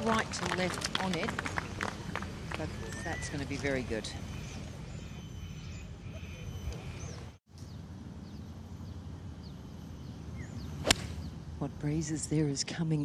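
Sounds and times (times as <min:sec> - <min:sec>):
faint bird chirps: 0:04.1 - 0:11.4
golf club striking ball: 0:10.8 - 0:11.3.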